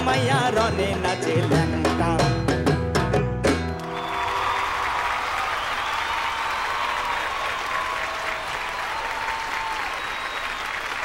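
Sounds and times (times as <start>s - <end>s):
audience applauding: 3.8s - 11.0s.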